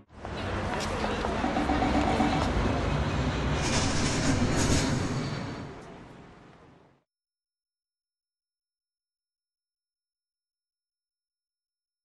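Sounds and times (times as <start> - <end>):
loud rumbling and clattering: 0.5 - 6.4.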